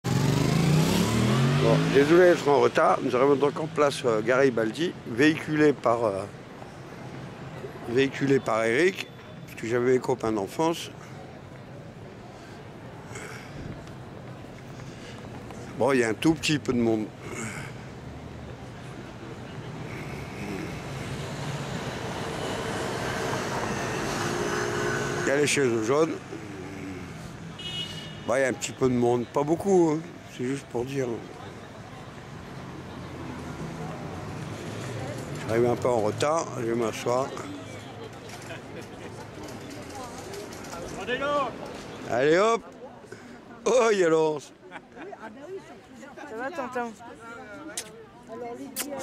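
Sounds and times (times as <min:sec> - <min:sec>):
urban street traffic: 0:00.0 - 0:49.0.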